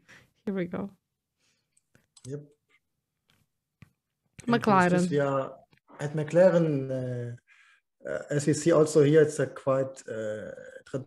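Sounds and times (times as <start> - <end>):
person saying yep: 4.5 - 5.4.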